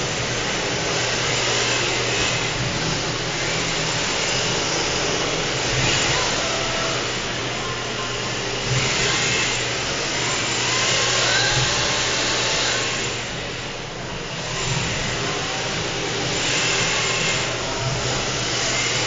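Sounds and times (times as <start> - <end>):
small electric motors whining: 0.0 - 19.0.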